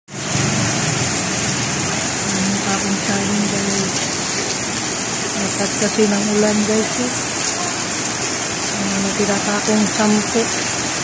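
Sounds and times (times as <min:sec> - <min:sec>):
heavy rain on street: 0:00.1 - 0:11.0.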